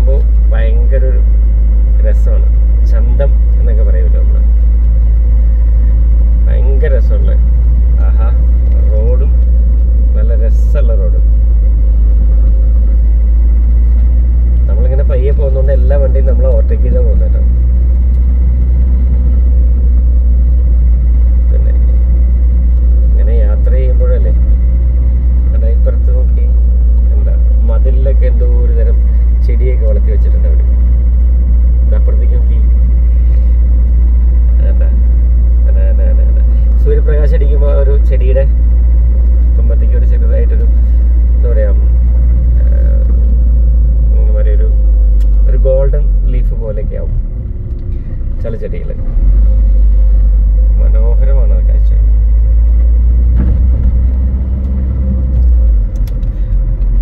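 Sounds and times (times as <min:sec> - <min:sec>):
vehicle rumbling along road: 0:00.0 - 0:57.0.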